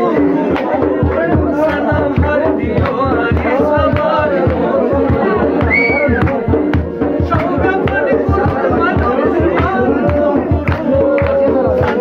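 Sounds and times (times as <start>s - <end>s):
man singing folk song: 0.0s - 12.0s
steady drum beat: 0.0s - 12.0s
voices of gathering: 0.0s - 12.0s.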